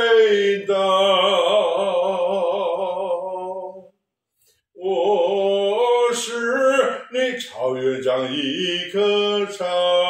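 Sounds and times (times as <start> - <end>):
man singing unaccompanied: 0.0 - 3.9, 4.8 - 10.0.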